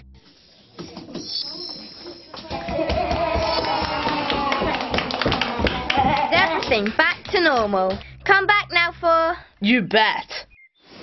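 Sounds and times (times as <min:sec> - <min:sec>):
children clapping: 0:02.4 - 0:08.3.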